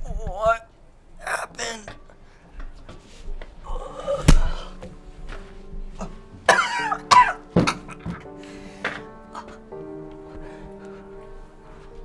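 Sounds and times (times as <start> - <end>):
background music with held notes: 0.0 - 12.0
person coughing: 6.0 - 8.2.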